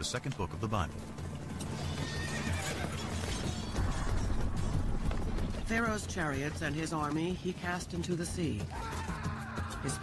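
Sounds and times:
background music: 0.0 - 10.0
hooves clattering: 0.0 - 10.0
horse whinnying: 1.7 - 4.4.

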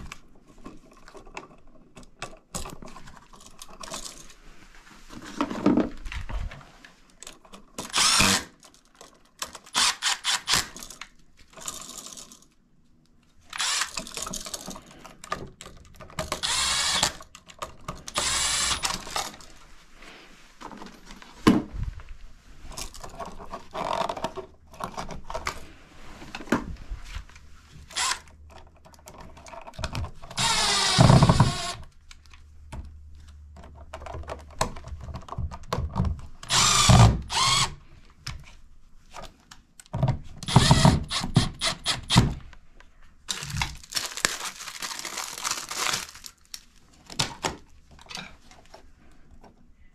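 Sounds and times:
cordless driver running: 7.9 - 8.5, 13.6 - 14.0, 16.4 - 17.2, 18.1 - 19.1, 30.4 - 31.8, 36.5 - 37.7, 40.5 - 42.1.

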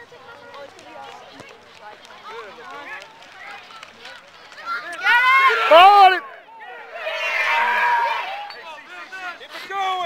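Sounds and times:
spectators shouting and cheering: 2.3 - 10.0.

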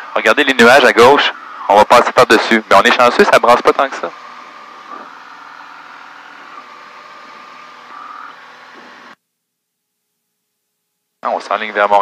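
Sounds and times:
aircraft cabin engine drone: 0.0 - 9.2.

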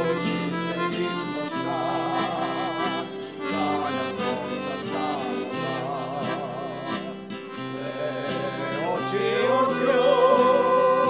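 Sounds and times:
male vocal group singing: 0.0 - 7.1, 7.7 - 11.0
accordion: 0.0 - 11.0
guitar: 0.0 - 11.0
violin: 0.0 - 11.0.

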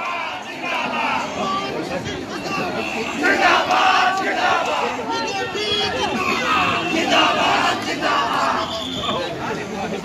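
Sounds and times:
crowd shouting: 0.0 - 9.3.

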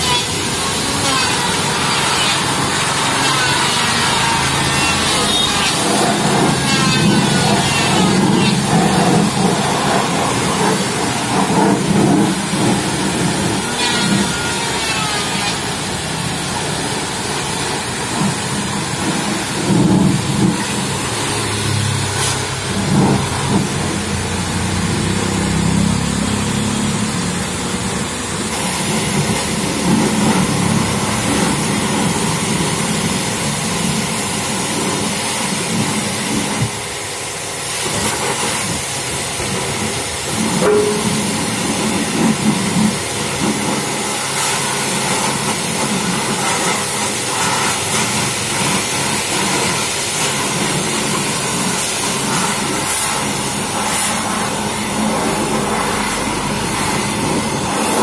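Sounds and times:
pressure washer spraying metal: 0.0 - 58.0.

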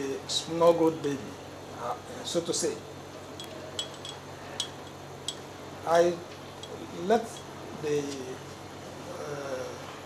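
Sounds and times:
low room hum: 0.0 - 10.0
high ringing ticks: 3.4 - 5.4.

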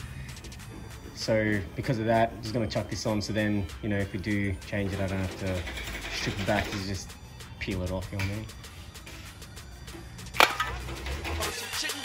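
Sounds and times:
background music with bass beat: 0.0 - 12.0
metal can clinking: 10.3 - 11.6.

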